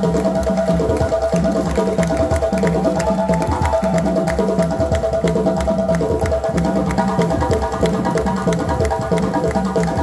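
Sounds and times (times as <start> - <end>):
hand drums playing fast rhythm: 0.0 - 10.0.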